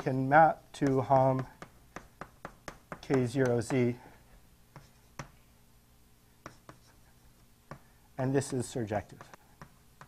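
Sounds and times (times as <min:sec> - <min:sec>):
chalk tapping on a blackboard: 0:00.8 - 0:04.1, 0:04.7 - 0:05.4, 0:06.4 - 0:10.0.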